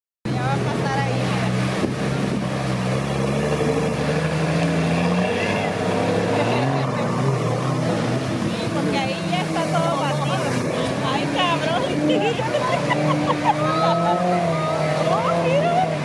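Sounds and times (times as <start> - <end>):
car engine revving: 0.3 - 16.0
people's voices: 0.3 - 16.0.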